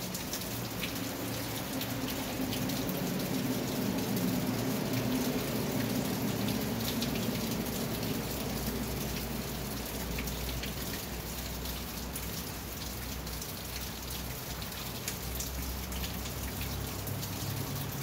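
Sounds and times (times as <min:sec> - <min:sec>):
rain on a roof: 0:00.0 - 0:18.0
raindrop ticks: 0:00.0 - 0:18.0.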